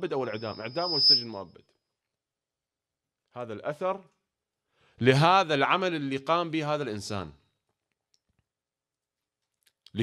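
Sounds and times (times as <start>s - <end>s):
man speaking: 0.0s - 1.6s, 3.4s - 4.2s, 5.0s - 7.4s.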